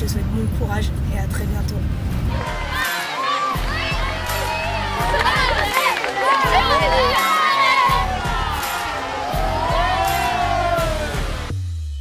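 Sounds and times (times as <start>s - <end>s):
children shouting and cheering: 2.3s - 11.5s
background music with bass beat: 2.3s - 12.0s.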